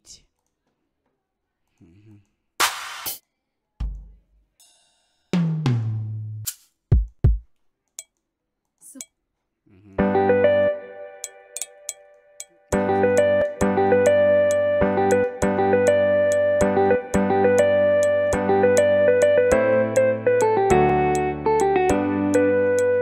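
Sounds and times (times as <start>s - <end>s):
kick drum thumps: 6.9s - 7.5s
electric piano chord loop: 10.0s - 12.0s, 12.7s - 23.0s
ticking percussion pattern: 11.2s - 21.8s.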